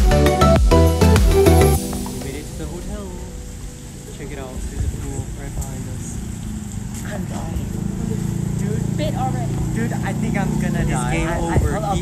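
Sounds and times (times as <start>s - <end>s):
voices talking: 1.5s - 12.0s
outdoor background noise: 1.8s - 12.0s.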